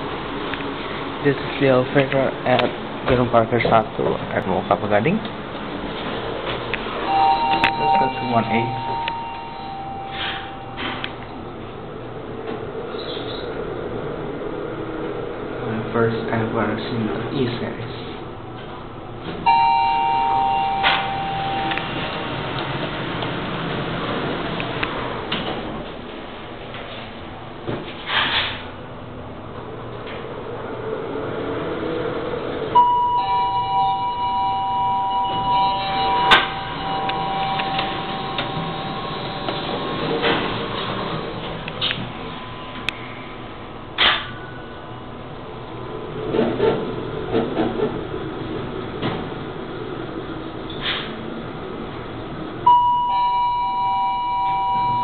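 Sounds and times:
elevator hum and rumbling: 0.0s - 55.0s
elevator arrival chime: 7.0s - 11.6s, 19.4s - 23.0s, 32.7s - 45.3s, 52.6s - 55.0s.

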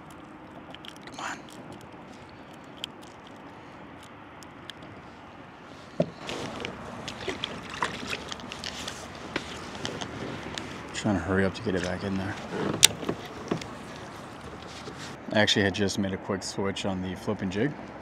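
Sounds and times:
fish splashing into water: 6.2s - 9.7s.

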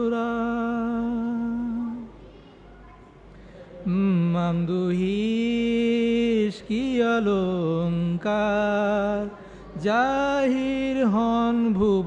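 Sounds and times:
person singing a hymn: 0.0s - 2.2s, 3.8s - 12.0s.

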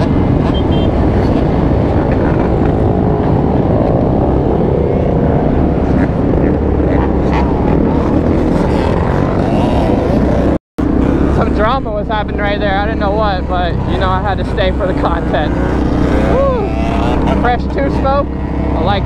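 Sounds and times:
dirt bike engines revving: 0.0s - 19.0s.

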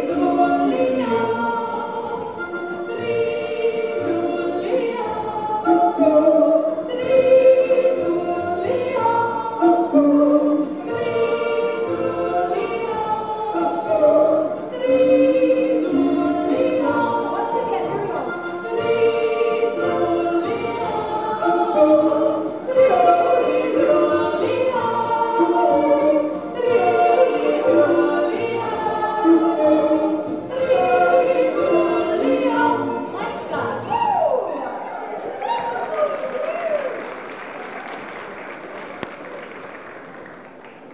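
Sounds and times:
accordion: 0.0s - 33.9s
women singing in harmony: 0.0s - 35.8s.

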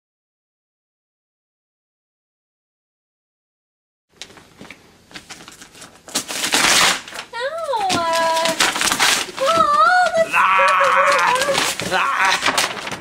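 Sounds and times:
rustling: 4.2s - 13.0s
high wailing vocal sounds: 9.4s - 12.6s.

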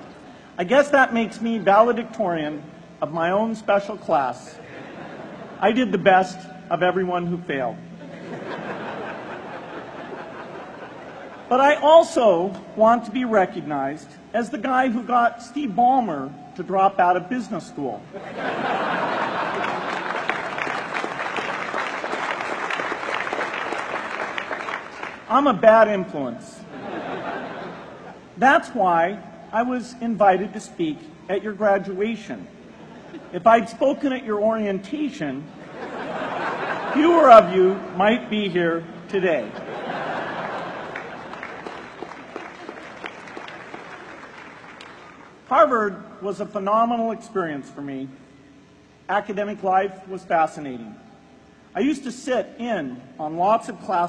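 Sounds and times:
audience applauding: 19.4s - 25.3s, 40.2s - 45.4s.

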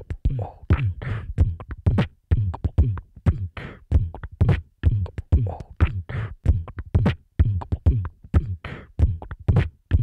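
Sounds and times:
beatboxing into a microphone: 0.0s - 10.0s.

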